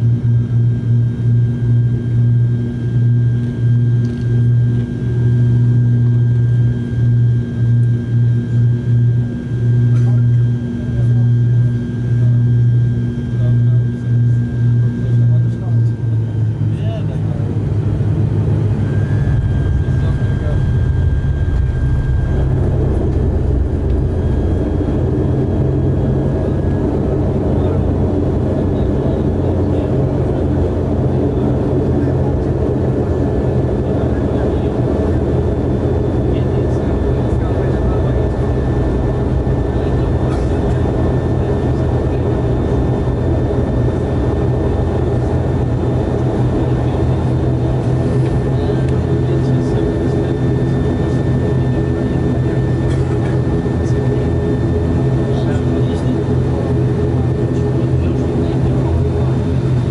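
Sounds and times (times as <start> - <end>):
faint high engine whine: 0.0 - 59.9
turboprop engine drone: 0.0 - 59.9.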